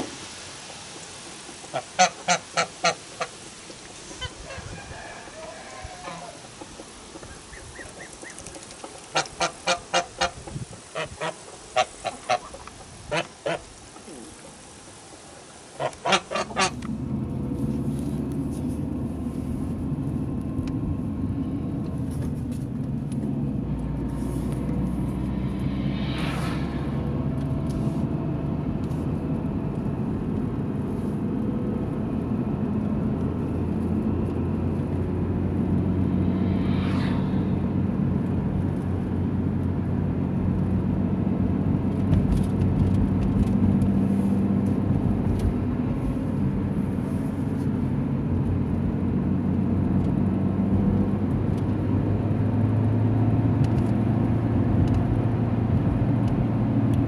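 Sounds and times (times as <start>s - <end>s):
vehicle passing rush: 16.4s - 56.9s
car engine and tyre drone: 16.7s - 57.0s.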